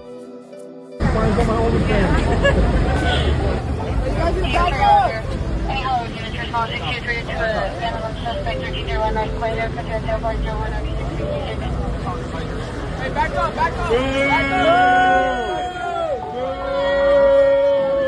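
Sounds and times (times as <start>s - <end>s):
people talking: 1.0s - 15.5s
low engine rumble: 1.0s - 18.0s.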